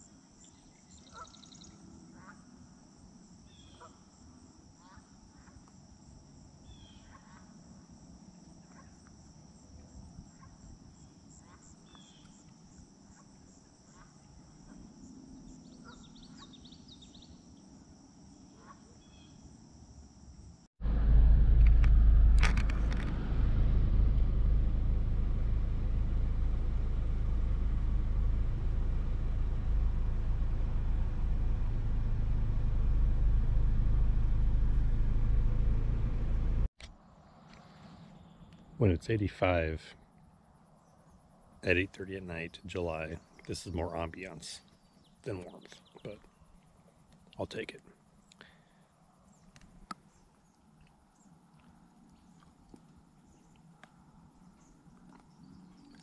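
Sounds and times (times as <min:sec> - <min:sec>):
crickets chirping: 0:00.0 - 0:36.4, 0:37.0 - 0:56.0
bird chirps: 0:00.4 - 0:02.4, 0:06.6 - 0:07.4, 0:10.4 - 0:12.5, 0:15.3 - 0:17.6
car road noise on gravel: 0:20.8 - 0:36.7.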